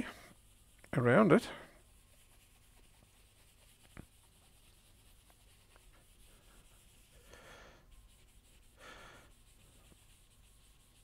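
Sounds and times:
pencil rubbing on paper: 0:00.0 - 0:11.0.

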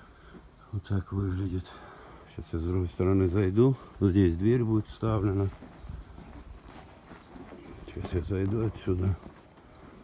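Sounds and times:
soft footsteps: 0:03.4 - 0:10.0.

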